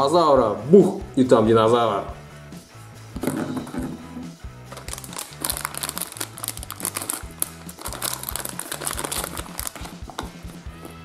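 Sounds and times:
background music with bass line: 0.0 - 11.0
plastic packet crinkling: 4.7 - 10.6.

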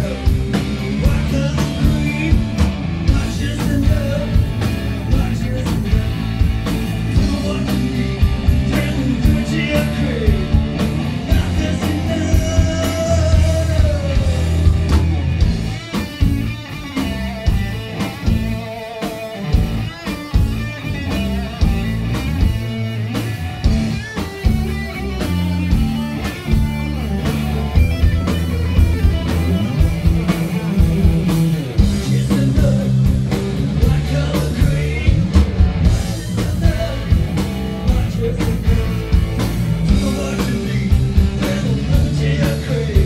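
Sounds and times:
bass guitar: 0.0 - 43.0
drum kit: 0.0 - 43.0
electric lead guitar: 0.0 - 43.0.

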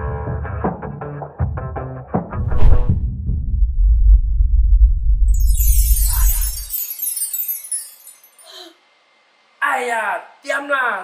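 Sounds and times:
loud low rumble: 2.4 - 5.4
high glittering chime sweep: 5.3 - 8.7.

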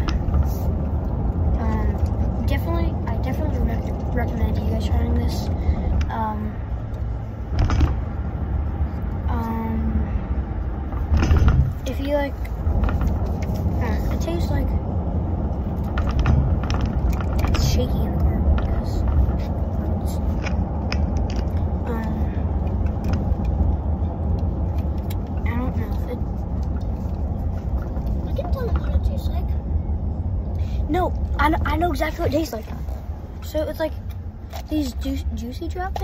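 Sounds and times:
car cabin rumble: 0.0 - 36.0
small clicks and rustles: 10.9 - 14.4, 15.6 - 29.2.

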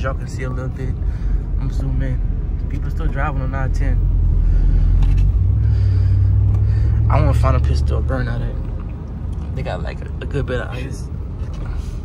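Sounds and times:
engine and road rumble in cabin: 0.0 - 12.0.

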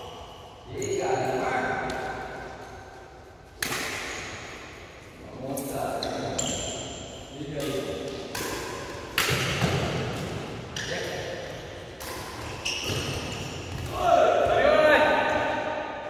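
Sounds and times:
rackets striking shuttlecock: 3.6 - 4.6, 7.5 - 13.9
loud shout: 13.9 - 15.7.

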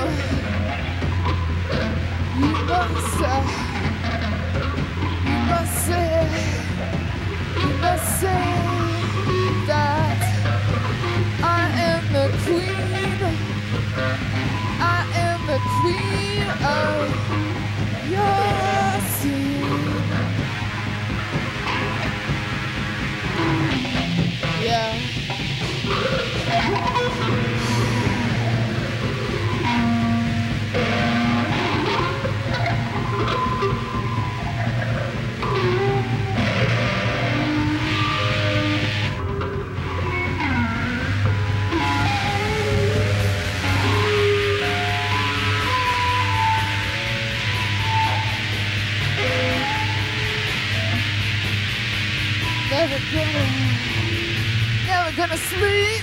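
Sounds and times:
steady low drone: 0.0 - 55.7
electric guitars bending notes: 0.0 - 56.0.

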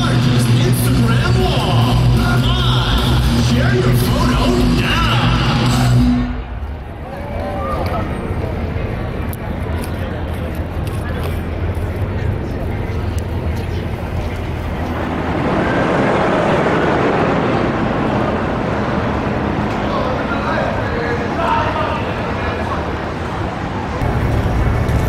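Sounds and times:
hubbub of many voices: 0.0 - 25.0
low rumble of traffic: 0.0 - 25.0.

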